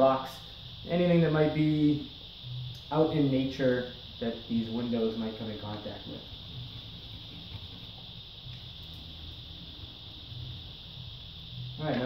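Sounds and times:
high hiss: 0:00.0 - 0:12.0
low hum: 0:00.3 - 0:12.0.

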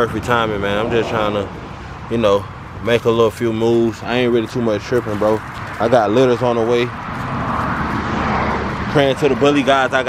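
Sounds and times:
passing vehicle rushing: 0:00.0 - 0:03.4, 0:05.3 - 0:10.0.

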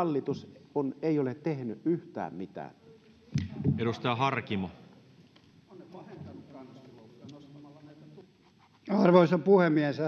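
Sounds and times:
faint voices in a hall: 0:02.2 - 0:10.0.

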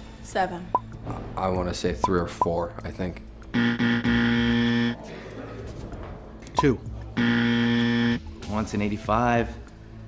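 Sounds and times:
wrong-answer buzzer: 0:03.5 - 0:05.0, 0:06.6 - 0:08.3.

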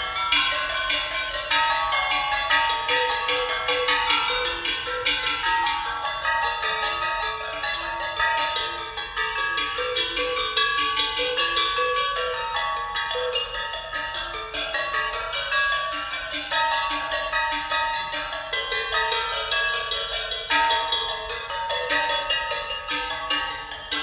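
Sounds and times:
metal percussion ensemble playing: 0:00.0 - 0:24.0.

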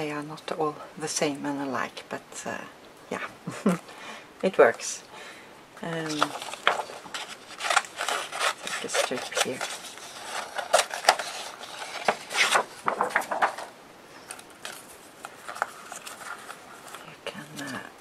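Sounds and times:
paper rustling: 0:06.0 - 0:17.9.

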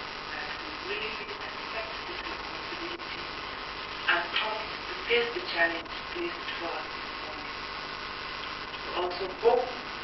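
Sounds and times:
electrical mains hum: 0:00.0 - 0:10.0
woman speaking into a microphone: 0:04.0 - 0:07.7, 0:08.5 - 0:10.0.

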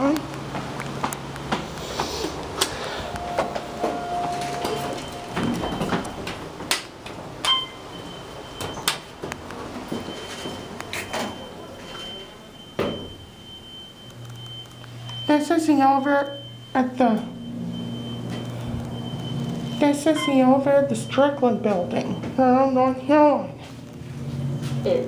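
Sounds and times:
elevator doors sliding: 0:01.2 - 0:13.2, 0:15.3 - 0:23.0.

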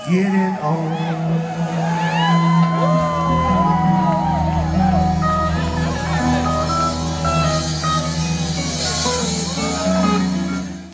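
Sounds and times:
electric guitars bending notes: 0:01.0 - 0:10.9
live rock band playing: 0:01.5 - 0:10.9.

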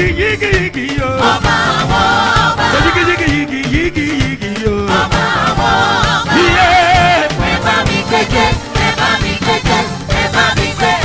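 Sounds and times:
instrumental accompaniment with beat: 0:00.0 - 0:11.0
gospel choir singing: 0:00.9 - 0:11.0.

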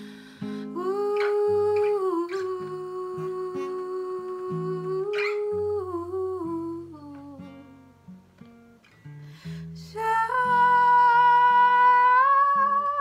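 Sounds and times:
plucked acoustic guitar: 0:00.0 - 0:13.0
woman humming: 0:00.7 - 0:07.5, 0:09.9 - 0:13.0.

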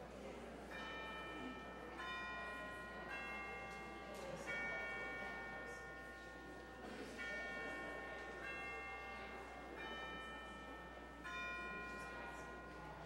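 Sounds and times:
bells ringing: 0:00.7 - 0:13.0.

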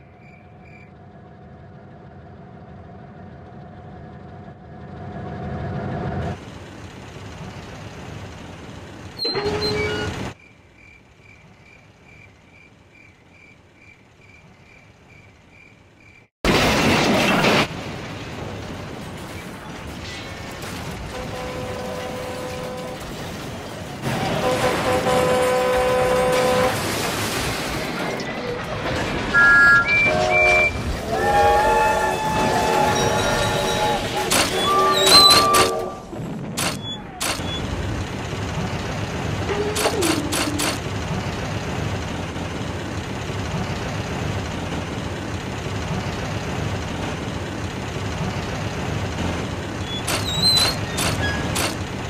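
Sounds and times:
steam locomotive whistle: 0:24.2 - 0:26.8, 0:29.4 - 0:36.1.

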